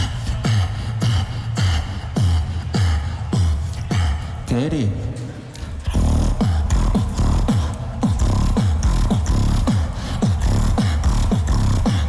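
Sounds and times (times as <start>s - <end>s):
beatboxing bass kicks: 0.0s - 4.5s, 5.8s - 12.0s
low bass drone: 5.9s - 12.0s.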